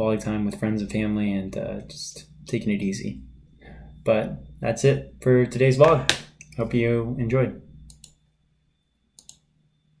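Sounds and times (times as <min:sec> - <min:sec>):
faint computer mouse clicks: 0:09.2 - 0:09.4.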